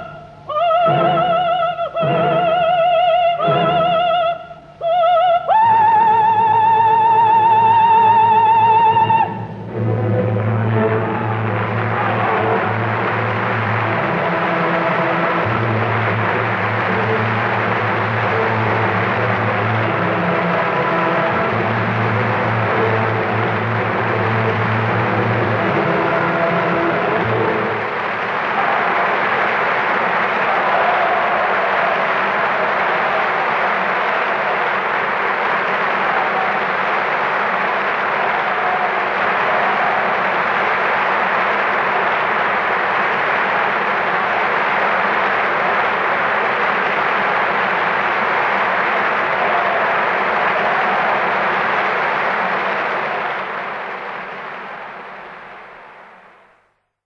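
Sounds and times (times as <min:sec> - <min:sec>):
audience applauding: 0:05.0 - 0:56.8.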